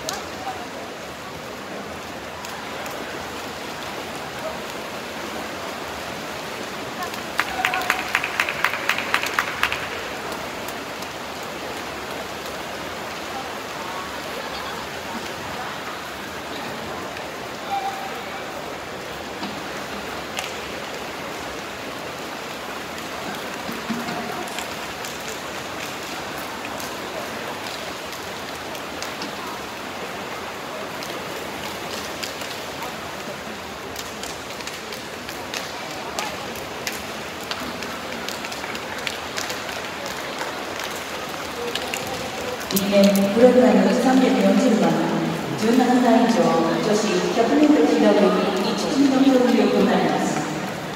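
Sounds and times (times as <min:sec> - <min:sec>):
swimmers splashing water: 0:00.0 - 0:50.9.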